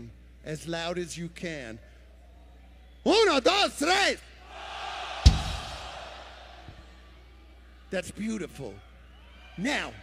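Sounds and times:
crowd shouting together: 4.4 - 6.8
loud low drum thump: 5.2 - 5.9.

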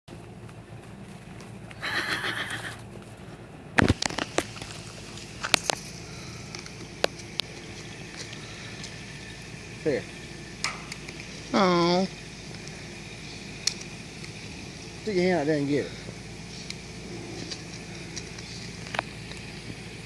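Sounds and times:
wire-mesh fence struck: 10.6 - 11.1.

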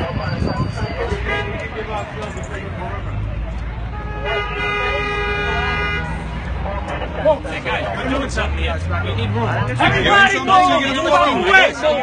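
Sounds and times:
vehicle horn blast: 1.0 - 1.7, 3.9 - 6.2.

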